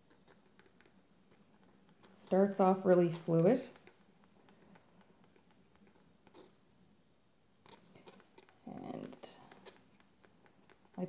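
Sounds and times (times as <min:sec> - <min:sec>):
stir stick scraping paint cup: 0:00.0 - 0:06.8, 0:07.6 - 0:11.0.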